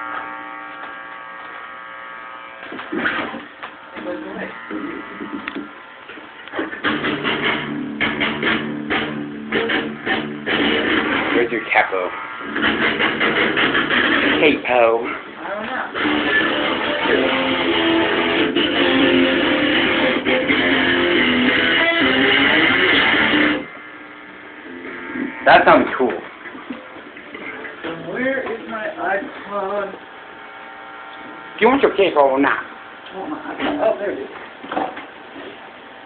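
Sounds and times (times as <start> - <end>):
faint amplifier hum: 0.0 - 36.0
guitar being strummed: 6.5 - 11.7, 12.4 - 14.8, 15.9 - 23.8, 24.4 - 28.7.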